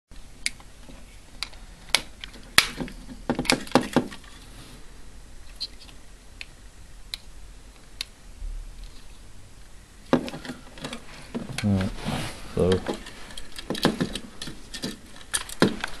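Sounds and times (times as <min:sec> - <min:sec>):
objects clicking and knocking: 0:12.7 - 0:16.0.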